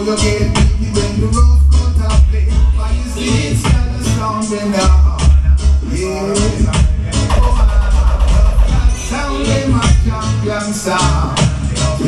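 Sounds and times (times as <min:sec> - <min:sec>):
loud bass-heavy music: 0:00.0 - 0:12.0.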